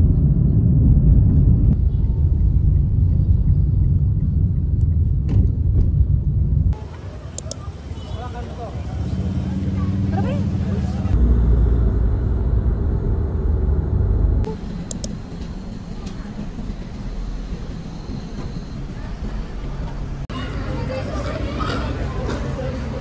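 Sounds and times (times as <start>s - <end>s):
low car road rumble: 0.0s - 23.0s
quiet traffic noise: 1.3s - 23.0s
street bustle with voices: 6.7s - 11.2s, 14.5s - 23.0s.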